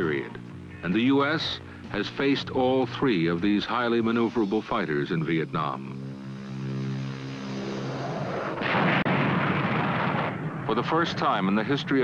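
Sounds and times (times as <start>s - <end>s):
low hum: 0.0s - 11.1s
loud noisy roar: 6.4s - 10.4s
sharp crack: 8.3s - 11.8s.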